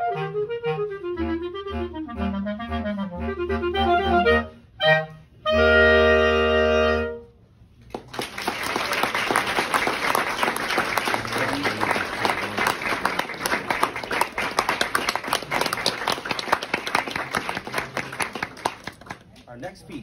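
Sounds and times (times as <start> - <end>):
audience applauding: 7.8 - 19.3
hands clapping close by: 7.8 - 19.5.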